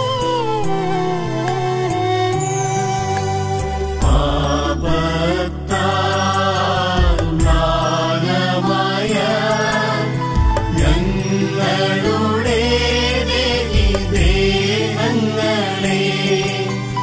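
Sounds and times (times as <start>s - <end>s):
instrumental accompaniment: 0.0s - 17.0s
devotional song sung melody: 1.2s - 17.0s.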